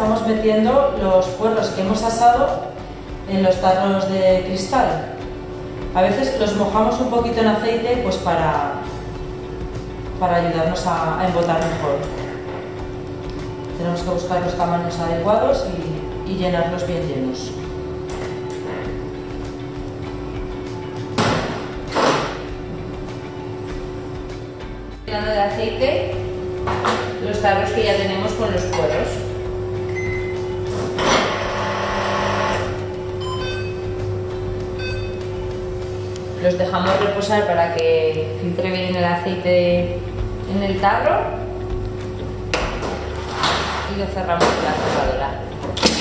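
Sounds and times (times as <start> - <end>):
steady low hum: 0.0 - 46.0.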